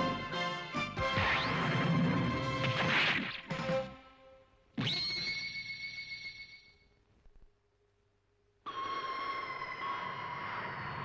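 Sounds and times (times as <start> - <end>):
orchestral theme music: 0.0 - 2.8.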